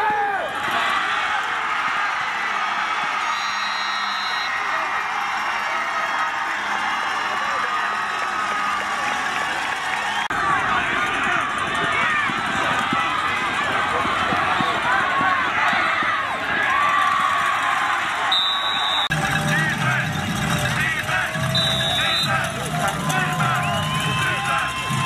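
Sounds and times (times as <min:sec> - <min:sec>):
crowd shouting and talking: 0:00.0 - 0:25.0
short high whistle blasts: 0:03.3 - 0:04.6, 0:18.3 - 0:19.1, 0:21.5 - 0:22.4.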